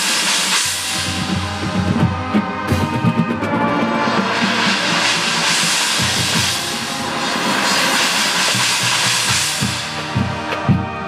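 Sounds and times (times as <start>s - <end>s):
bright hissing cymbal wash: 0.0s - 10.9s
short drum strokes: 0.0s - 11.0s
marching band playing: 0.6s - 11.0s.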